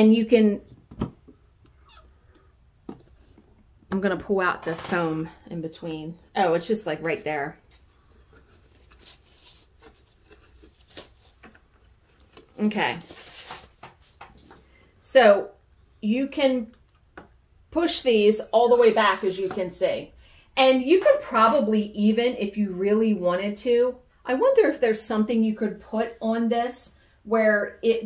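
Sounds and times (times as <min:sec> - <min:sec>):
soft handling rustle: 0:07.0 - 0:14.9.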